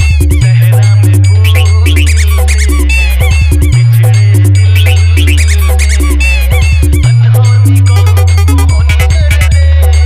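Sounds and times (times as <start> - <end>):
stuttered bass hits: 0.0 - 10.0
high gliding synth squeaks: 1.4 - 7.2.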